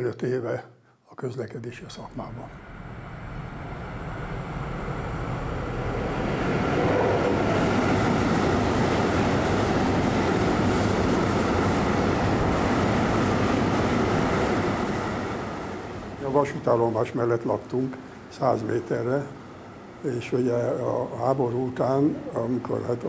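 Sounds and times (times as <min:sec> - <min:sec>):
train running through station: 0:02.0 - 0:23.0.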